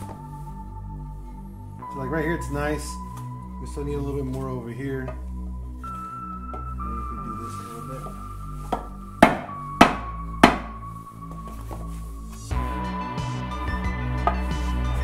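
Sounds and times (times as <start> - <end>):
background music: 0.0 - 15.0
rubber mallet striking wood: 8.7 - 10.8.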